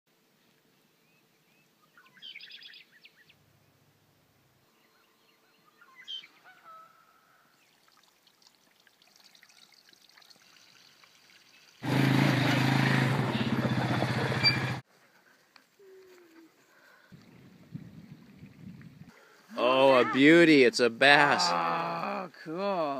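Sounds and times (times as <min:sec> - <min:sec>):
short bird calls: 0:04.7 - 0:07.6.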